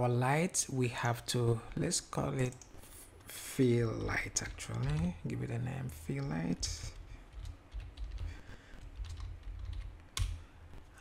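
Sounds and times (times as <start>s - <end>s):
typing on computer keyboard: 3.9s - 5.2s, 6.2s - 10.4s.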